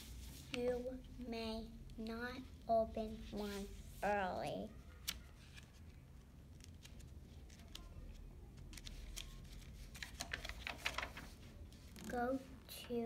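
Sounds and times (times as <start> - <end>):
paper pages rustling and turning: 0.0 - 0.9, 4.9 - 12.2.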